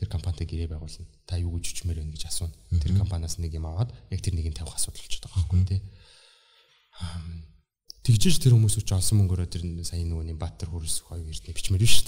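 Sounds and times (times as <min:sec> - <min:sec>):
man talking: 0:00.0 - 0:05.9, 0:07.0 - 0:12.0.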